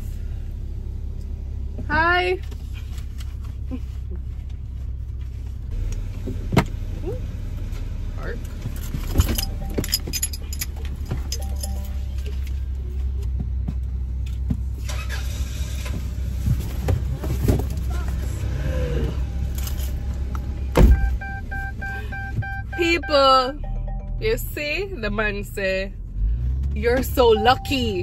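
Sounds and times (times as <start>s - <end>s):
car engine hum: 0.0s - 28.0s
loud thump: 20.8s - 21.2s.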